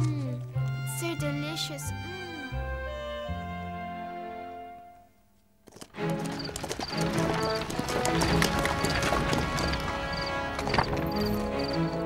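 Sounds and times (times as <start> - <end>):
music: 0.0 - 12.0
horses' hooves clip-clopping: 5.6 - 12.0.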